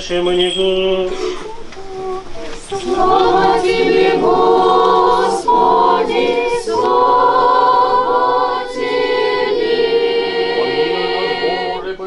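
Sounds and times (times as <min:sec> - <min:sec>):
girls' choir chanting a cappella: 0:01.3 - 0:12.0.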